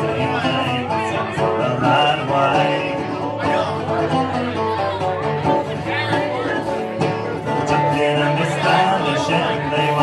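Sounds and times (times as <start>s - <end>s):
mandolin strummed: 0.0s - 10.0s.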